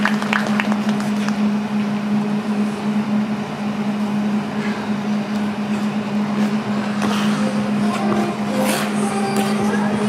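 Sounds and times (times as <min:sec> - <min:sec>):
machinery low hum: 0:00.0 - 0:10.0
noisy background: 0:00.0 - 0:10.0.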